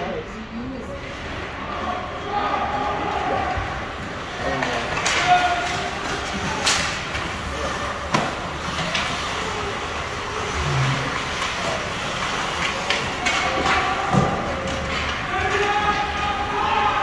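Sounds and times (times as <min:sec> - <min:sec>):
arena noise: 0:00.0 - 0:17.0
spectators talking: 0:00.0 - 0:17.0
hockey sticks knocking puck: 0:03.1 - 0:17.0.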